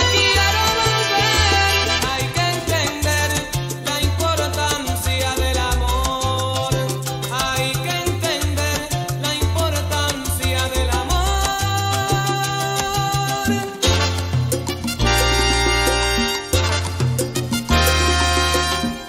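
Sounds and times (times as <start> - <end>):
salsa music: 0.0 - 19.0.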